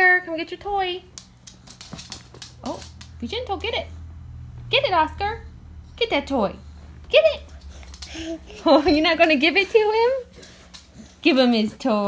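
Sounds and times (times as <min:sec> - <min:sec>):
dog claws clicking on hard floor: 0:01.0 - 0:03.7, 0:07.5 - 0:08.2, 0:10.2 - 0:11.2.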